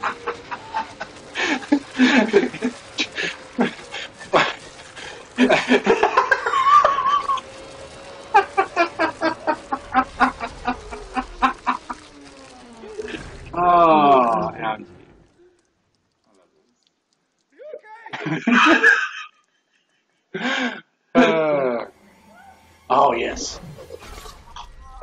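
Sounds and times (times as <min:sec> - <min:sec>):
faint steady hum: 0:00.0 - 0:25.0
man yelling: 0:17.6 - 0:18.1.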